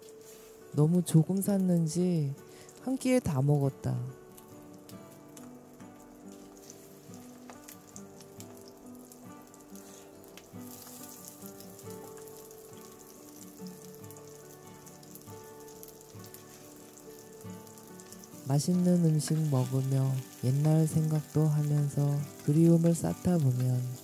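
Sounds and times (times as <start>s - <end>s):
food sizzling in hot oil: 0.0s - 24.0s
soft background music: 0.0s - 24.0s.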